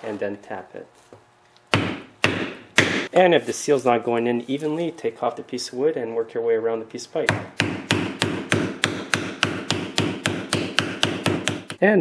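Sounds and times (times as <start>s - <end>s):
hammer tapping on wood: 7.3s - 11.8s.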